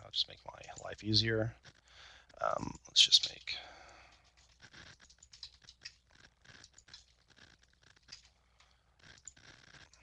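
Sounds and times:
faint keyboard typing: 0.0 - 10.0.

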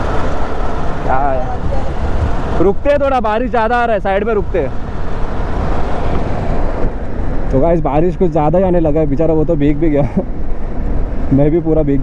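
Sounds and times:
motorcycle engine: 0.0 - 7.6
wet tyre noise: 0.0 - 12.0
wind rushing over microphone: 0.0 - 12.0.

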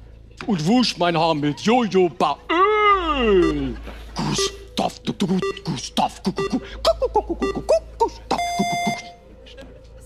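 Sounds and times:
man's voice: 0.4 - 9.2
electronic timer beep: 3.2 - 9.2.

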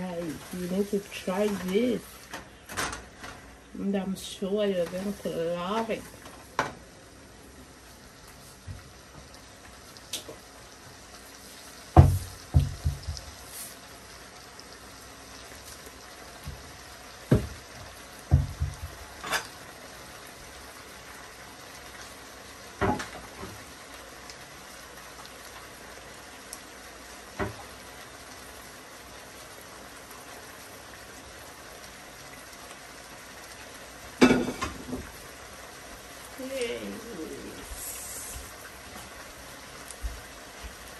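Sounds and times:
food sizzling in a pot: 0.0 - 40.9.

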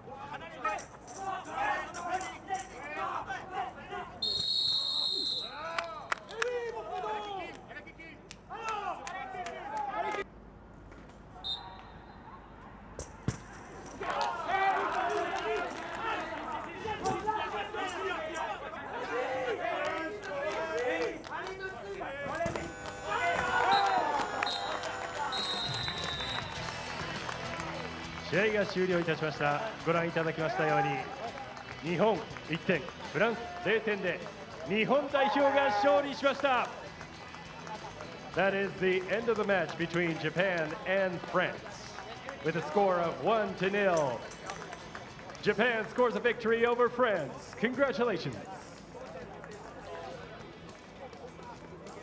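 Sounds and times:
referee's whistle blasts: 4.2 - 5.7, 11.4 - 12.3, 22.3 - 27.0
voices shouting: 22.2 - 26.9.

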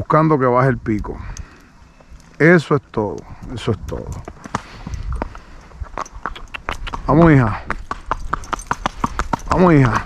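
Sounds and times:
hooves on asphalt: 3.1 - 10.0.

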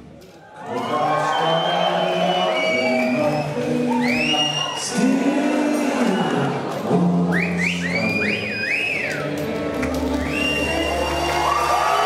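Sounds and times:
person whistling rising whistles: 0.7 - 5.0, 7.3 - 9.4, 10.2 - 12.0.

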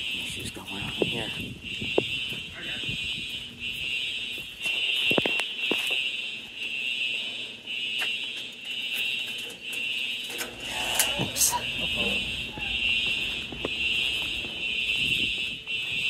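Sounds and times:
pulsing fire alarm horn: 0.0 - 16.0.

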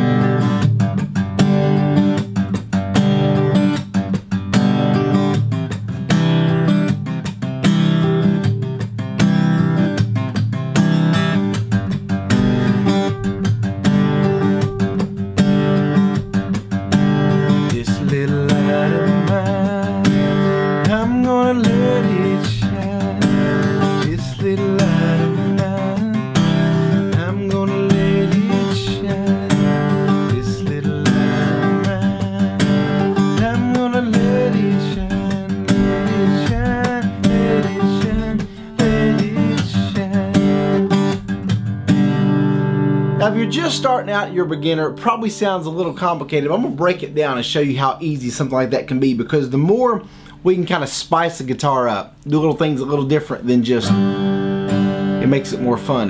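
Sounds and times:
acoustic guitar slap-strumming: 0.0 - 56.0
person singing: 17.7 - 41.1.

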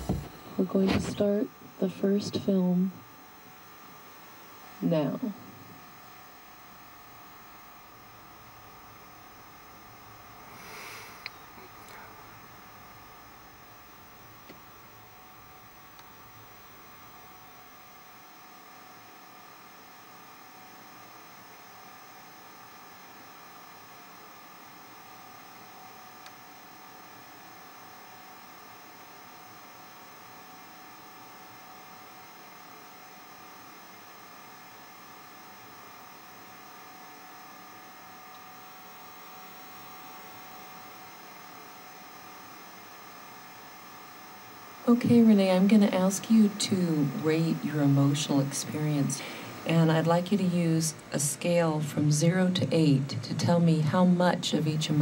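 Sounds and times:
electrical hum with whining tones: 0.0 - 55.0.

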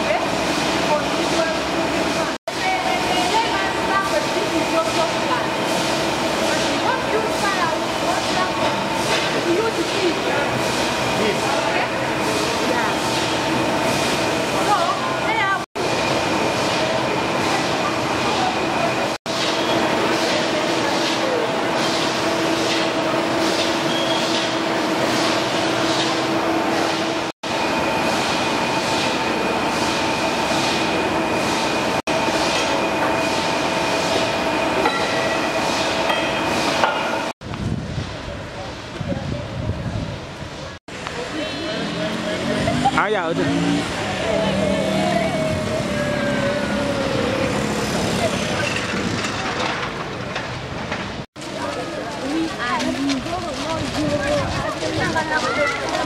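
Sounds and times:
factory machinery din: 0.0 - 56.0
machinery clatter: 45.4 - 56.0.

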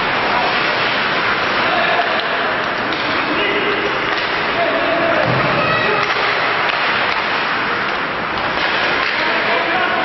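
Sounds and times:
ice hockey rink din: 0.0 - 10.0.

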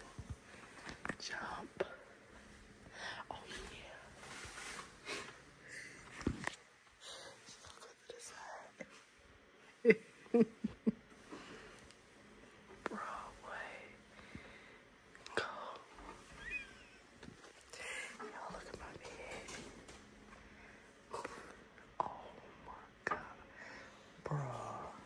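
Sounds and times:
hushed voices whispering: 0.9 - 2.1, 7.3 - 8.9, 12.8 - 14.0, 15.3 - 16.1, 17.7 - 19.7, 22.0 - 23.5, 24.2 - 25.0.

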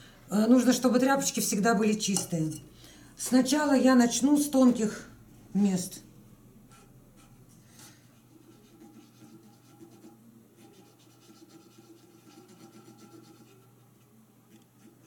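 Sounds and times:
cotton swab scratching on metal: 8.3 - 15.0.

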